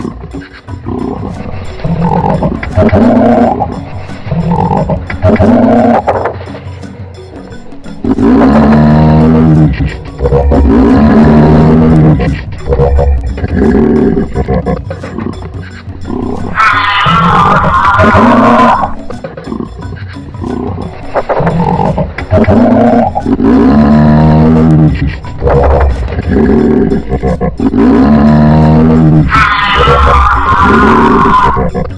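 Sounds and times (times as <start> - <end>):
animal roaring: 0.8 - 6.1, 8.0 - 14.9, 16.1 - 19.7, 20.4 - 31.9
higher-pitched animal call: 16.2 - 19.1, 21.2 - 31.9.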